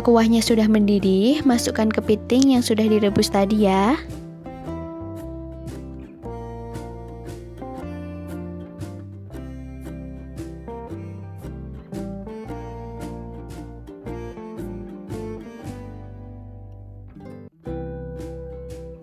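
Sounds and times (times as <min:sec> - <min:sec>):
low bass notes: 0:00.0 - 0:19.0
strummed acoustic guitar: 0:04.0 - 0:19.0.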